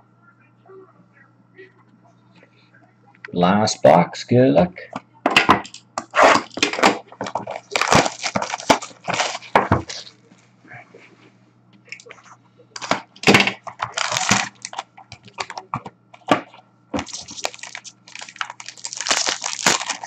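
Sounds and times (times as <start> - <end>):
plastic wrap crackling: 6.1 - 10.4, 12.8 - 15.8, 17.0 - 20.0
cardboard box opening: 7.3 - 10.0
box cutter slitting shrink wrap: 7.6 - 10.0, 13.9 - 14.8, 17.0 - 20.0.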